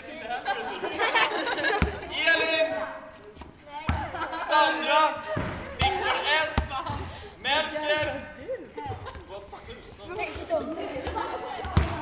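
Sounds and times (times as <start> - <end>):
basketball bouncing on gym floor: 3.8 - 4.2, 11.0 - 12.0.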